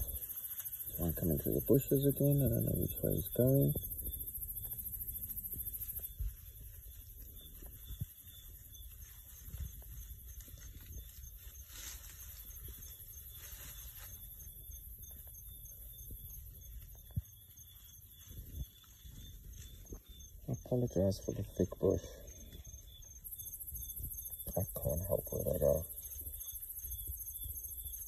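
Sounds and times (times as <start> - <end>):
crickets trilling: 0.0 - 28.0
ticking insect chirp: 0.0 - 28.0.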